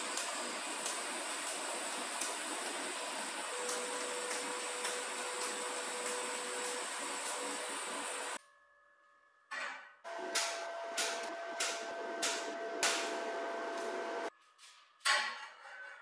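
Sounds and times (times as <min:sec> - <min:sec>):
welding arc hissing: 0:00.0 - 0:08.4, 0:10.1 - 0:14.3.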